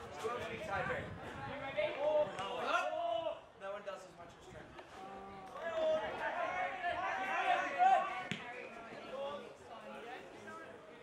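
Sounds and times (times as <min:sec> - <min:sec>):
voices shouting: 0:05.6 - 0:08.5.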